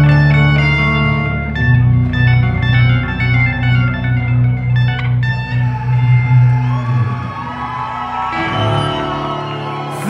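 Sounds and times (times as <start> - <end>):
electric guitar notes and chords: 0.0 - 10.0.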